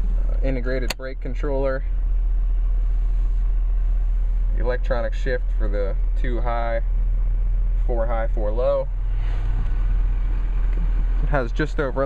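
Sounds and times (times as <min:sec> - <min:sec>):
diesel engine idling: 0:00.0 - 0:12.0.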